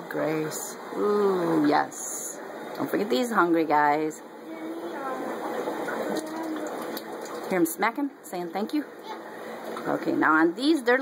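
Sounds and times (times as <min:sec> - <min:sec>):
aquarium water gurgling: 0:04.2 - 0:08.3, 0:08.9 - 0:10.4
fish smacking water surface: 0:05.6 - 0:07.5.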